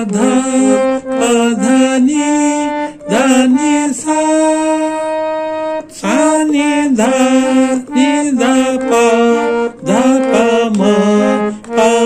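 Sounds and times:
harmonium notes stepping upward: 0.0s - 12.0s
man singing note names: 0.0s - 12.0s.

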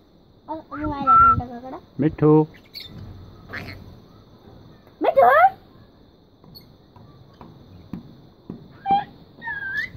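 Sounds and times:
faint high whine: 0.0s - 9.9s.

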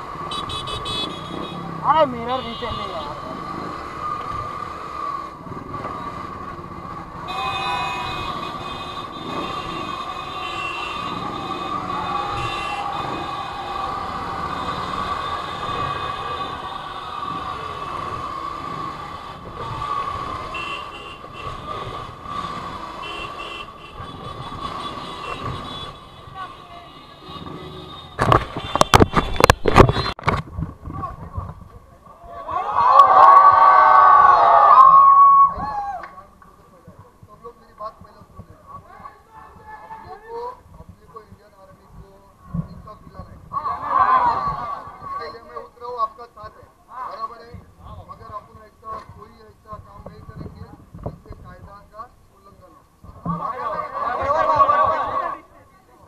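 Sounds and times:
motorcycle riding in traffic: 0.0s - 32.6s
crowd shouting: 10.0s - 17.8s, 32.3s - 36.0s, 43.6s - 45.2s, 53.4s - 55.6s.

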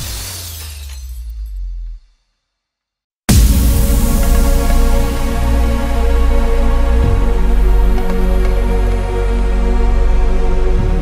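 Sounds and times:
bright crash hit: 3.3s - 7.2s
deep bass note: 3.3s - 9.6s.

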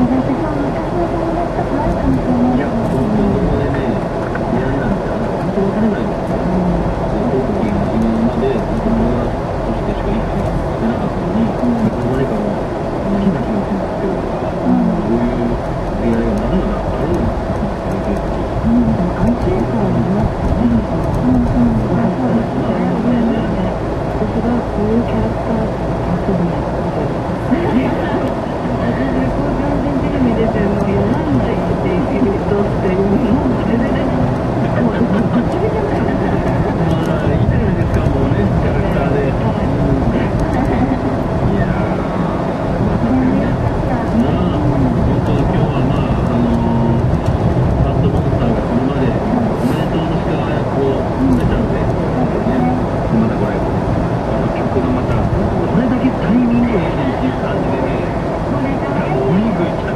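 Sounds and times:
car road and engine noise: 0.0s - 59.9s
voices talking: 0.0s - 59.9s.

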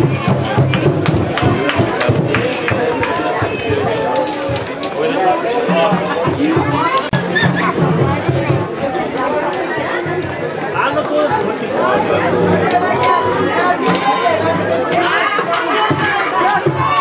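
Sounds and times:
chatter of overlapping voices: 0.0s - 17.0s.

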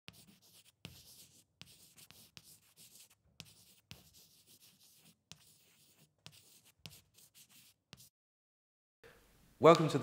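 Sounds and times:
chalk writing on blackboard: 0.1s - 8.1s.

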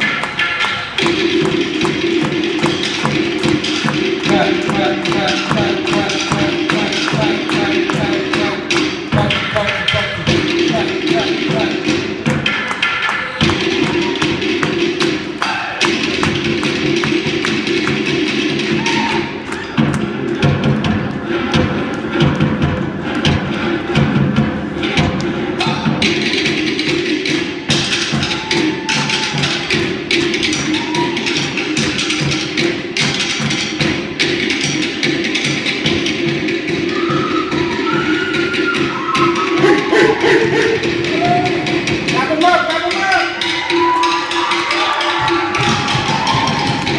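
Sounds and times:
fast driving drumming: 0.0s - 46.9s.

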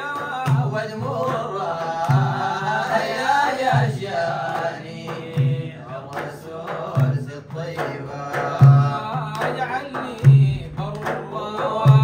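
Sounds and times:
hand clapping: 0.0s - 2.2s, 4.5s - 12.0s
frame drums: 0.0s - 12.0s
men chanting praise song: 0.0s - 12.0s.

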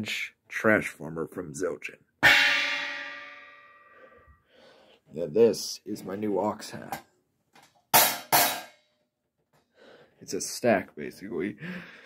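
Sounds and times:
cymbal stack struck with stick: 2.2s - 3.6s.

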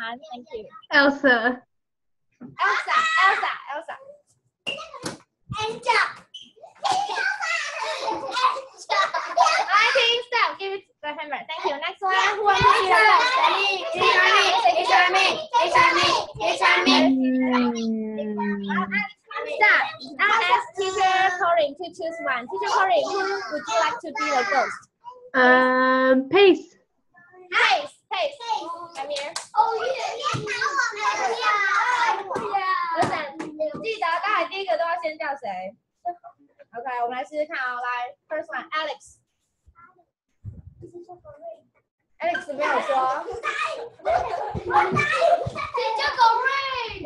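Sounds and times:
children shouting and chattering: 6.6s - 10.0s, 12.1s - 21.4s, 22.5s - 25.3s, 28.4s - 33.8s, 42.2s - 47.0s.

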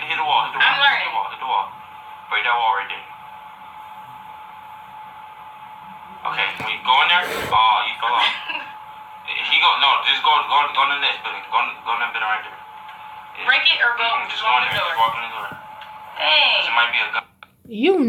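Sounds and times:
people talking: 6.0s - 8.6s, 9.3s - 12.6s, 13.4s - 15.6s, 16.2s - 18.0s.

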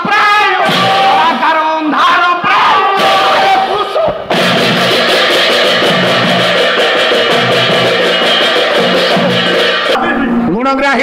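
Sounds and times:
two-headed drum beating: 0.0s - 1.4s, 2.6s - 10.0s
brass hand cymbals clashing: 4.3s - 10.0s.

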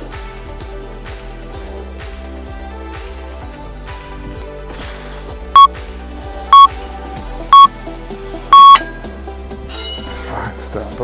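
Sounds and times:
background music: 0.0s - 11.0s
long timer beep: 8.6s - 9.1s
timer short beeps: 8.6s - 9.1s.

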